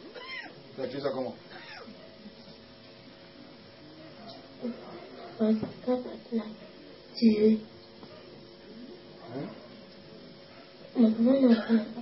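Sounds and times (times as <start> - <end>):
cat meowing: 0.1 - 0.6, 1.5 - 1.9.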